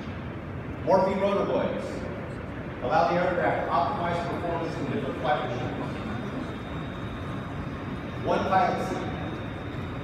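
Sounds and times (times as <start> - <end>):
exhibition hall low rumble: 0.0 - 10.0.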